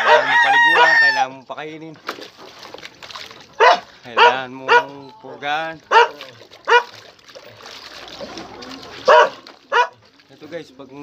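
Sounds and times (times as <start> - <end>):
dog barking: 0.0 - 0.9, 3.6 - 5.0, 5.9 - 7.0, 9.0 - 10.0.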